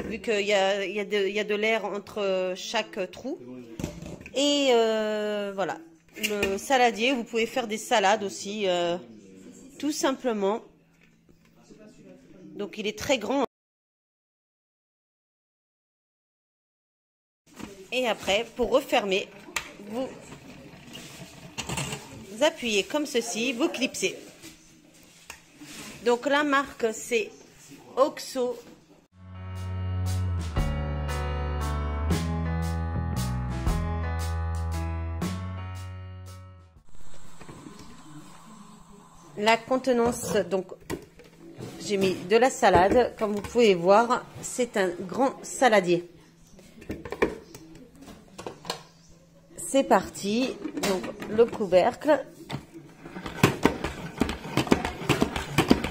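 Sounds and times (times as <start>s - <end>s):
plastic basket knocks and clicks: 53.2s - 55.9s.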